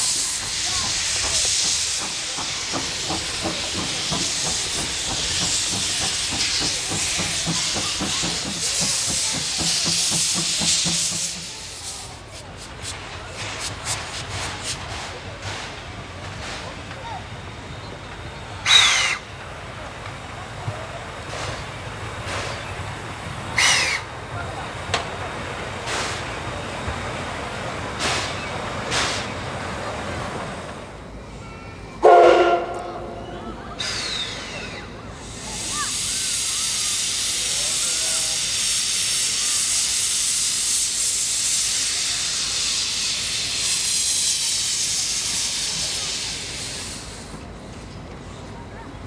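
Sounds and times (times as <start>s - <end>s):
steam locomotive exhaust puffs: 0.0s - 31.4s, 32.0s - 48.6s
steam venting hiss: 0.0s - 31.4s, 33.8s - 48.5s
steam whistle blast: 32.0s - 34.6s.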